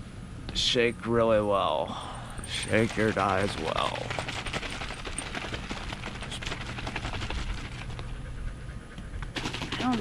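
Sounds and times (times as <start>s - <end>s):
liquid sloshing in shaken bottle: 2.4s - 8.0s.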